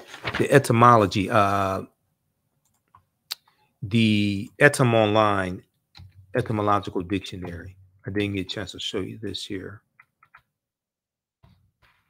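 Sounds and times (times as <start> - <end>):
person speaking: 0.0 - 1.9, 3.8 - 9.9.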